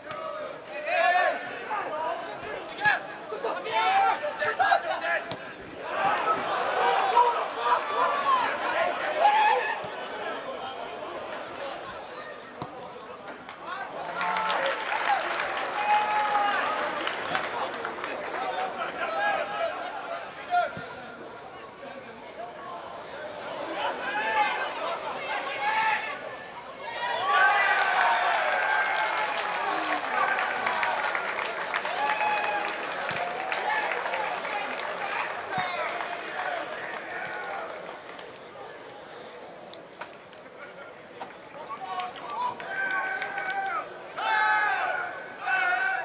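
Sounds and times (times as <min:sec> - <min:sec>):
shouted voices: 0:00.0 - 0:12.5, 0:22.8 - 0:37.8, 0:42.2 - 0:46.0
crowd applauding: 0:13.9 - 0:18.9, 0:27.3 - 0:38.8.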